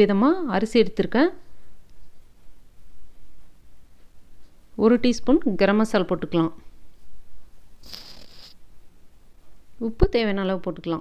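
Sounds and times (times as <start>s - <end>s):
salt pouring from a spoon: 7.8s - 8.5s.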